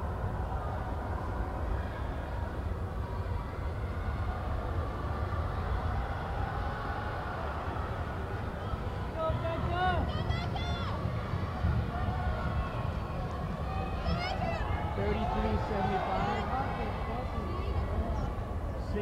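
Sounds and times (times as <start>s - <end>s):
crowd babble: 0.0s - 19.0s
crowd shouting: 0.0s - 19.0s.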